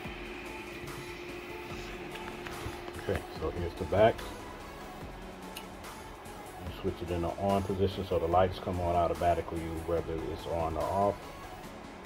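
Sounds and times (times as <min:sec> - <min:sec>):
mini fridge cooling fan whir: 0:00.0 - 0:09.2.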